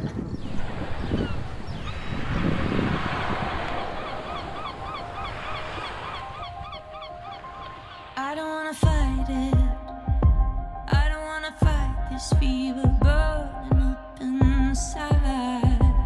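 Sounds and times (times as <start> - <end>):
birds honking: 0.4 - 8.4
steady rushing noise: 0.5 - 8.2.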